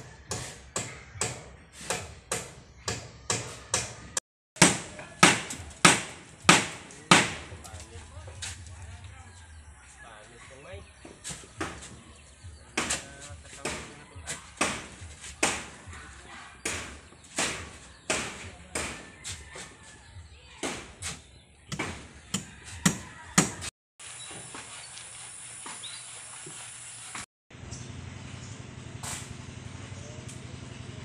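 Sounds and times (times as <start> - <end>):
hammer striking timber: 0.3 - 7.7, 12.8 - 14.0, 14.6 - 16.0, 16.6 - 19.2, 20.6 - 21.0, 21.7 - 23.7.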